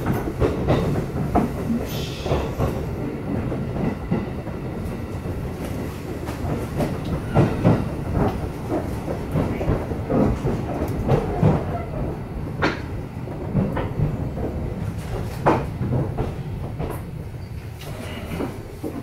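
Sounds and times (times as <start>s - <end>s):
train rumble inside carriage: 0.0s - 19.0s.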